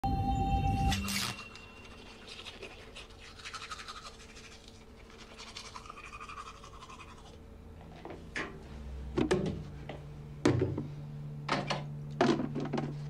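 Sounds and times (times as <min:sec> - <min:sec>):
toothbrush scrubbing teeth: 0:01.8 - 0:07.4.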